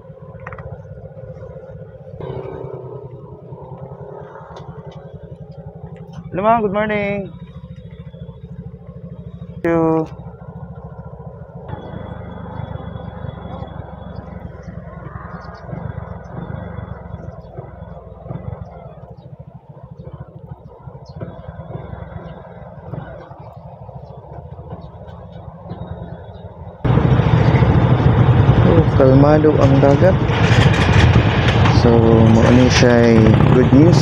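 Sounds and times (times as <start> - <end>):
motorcycle engine putter: 0.2 - 26.8, 28.6 - 34.0.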